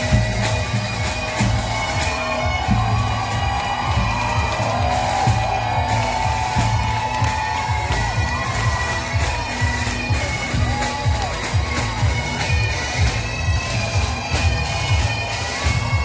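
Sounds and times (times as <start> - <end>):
crowd cheering and whooping: 0.0 - 16.0
music with low beat and drone: 0.0 - 16.0.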